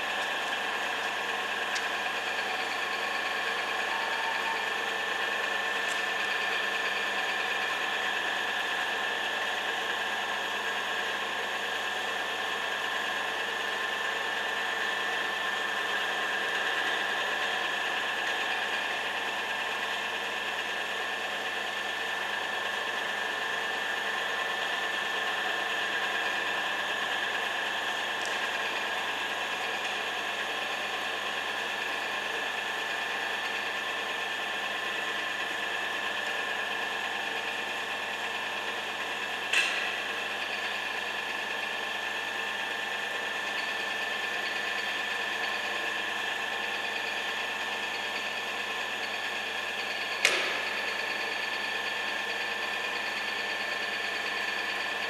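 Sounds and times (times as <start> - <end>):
pillar drill running: 0.0 - 55.0.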